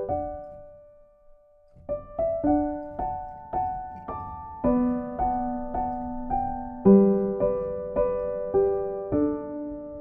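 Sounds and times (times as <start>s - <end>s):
solo piano music: 0.0s - 10.0s.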